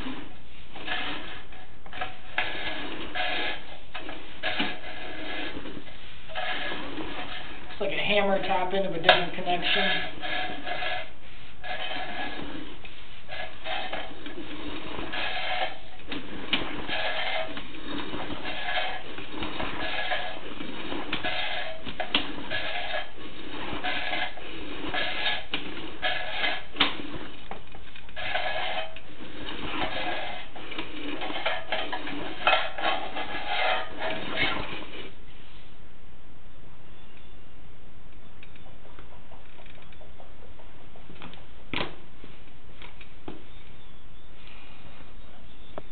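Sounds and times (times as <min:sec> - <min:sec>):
cable scraping in a pipe: 0:00.0 - 0:35.7.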